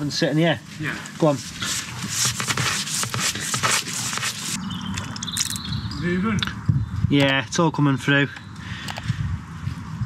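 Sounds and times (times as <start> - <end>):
drain rod scraping plastic rim: 1.6 - 4.6.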